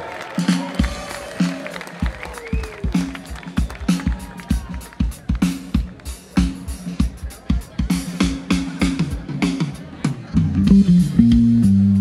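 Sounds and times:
live band playing groove: 0:00.0 - 0:12.0.

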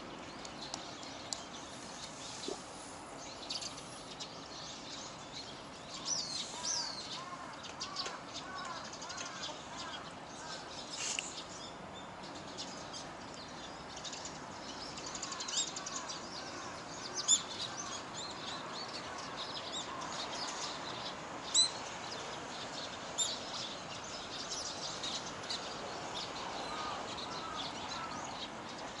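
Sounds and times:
songbirds chirping: 0:00.0 - 0:29.0
steady background noise: 0:00.0 - 0:29.0.

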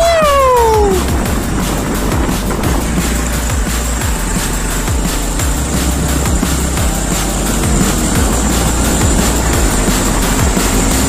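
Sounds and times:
man yelling high-pitched: 0:00.0 - 0:01.1
electronic dance music: 0:00.0 - 0:11.0.

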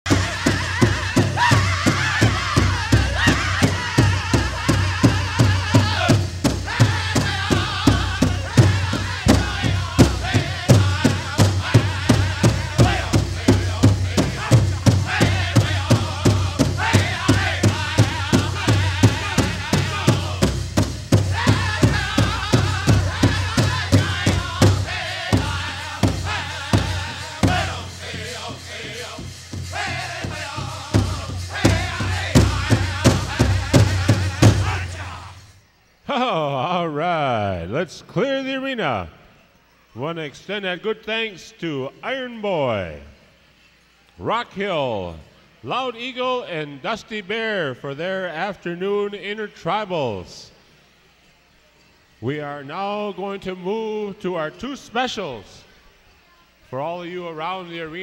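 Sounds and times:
large drum steady beat: 0:00.1 - 0:35.3
group singing: 0:00.1 - 0:35.6.

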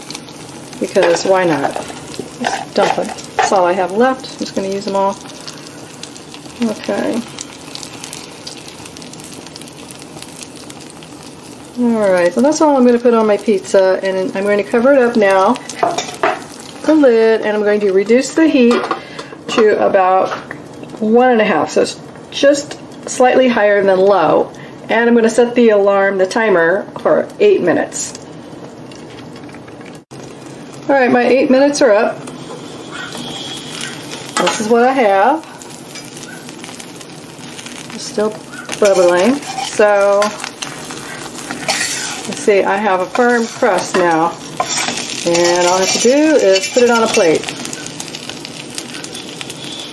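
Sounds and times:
frying sizzle with crackles and pops: 0:00.0 - 0:49.9.

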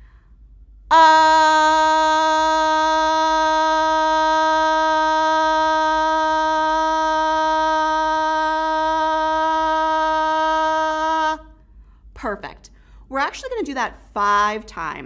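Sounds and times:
woman holding sustained ah: 0:00.9 - 0:13.1.

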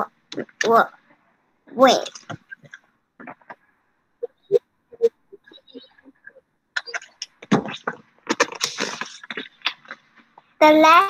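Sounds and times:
paper book rustling: 0:07.8 - 0:10.0.

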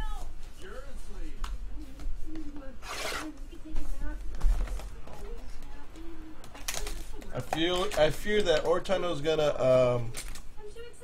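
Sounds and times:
card pack rustling: 0:06.5 - 0:08.8.

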